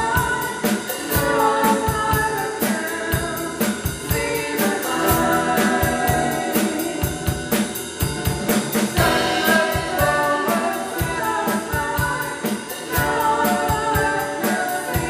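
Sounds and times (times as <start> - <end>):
woman singing: 0.0 - 7.6, 9.0 - 15.0
drum kit beat: 0.0 - 15.0.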